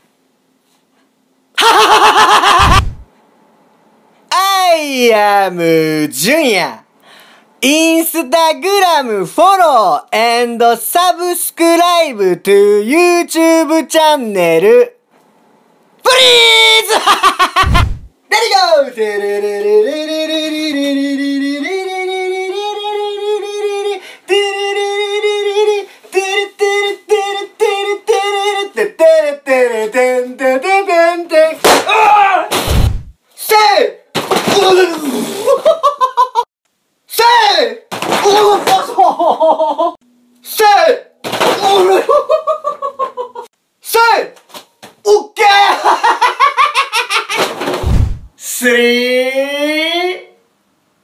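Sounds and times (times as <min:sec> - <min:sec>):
sharp knock: 0:02.6 - 0:03.0, 0:17.6 - 0:18.1, 0:32.5 - 0:33.2
low thump: 0:02.6 - 0:03.1, 0:17.6 - 0:18.1, 0:32.6 - 0:33.2, 0:47.8 - 0:48.3
person singing: 0:18.9 - 0:31.6.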